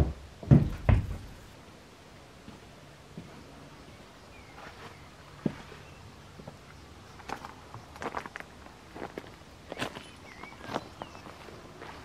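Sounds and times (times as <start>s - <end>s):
footsteps crunching on grass: 4.4s - 6.6s, 7.2s - 12.0s.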